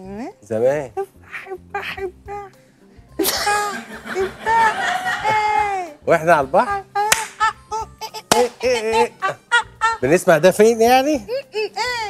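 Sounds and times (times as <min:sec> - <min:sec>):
sharp hand claps: 0:07.1 - 0:07.4, 0:08.3 - 0:08.7.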